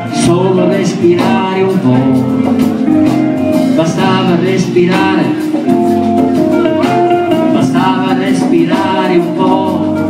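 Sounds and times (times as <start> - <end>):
man singing: 0.0 - 2.5, 3.6 - 5.8, 6.8 - 10.0
electric guitar: 0.0 - 10.0
rhythm section: 0.0 - 10.0.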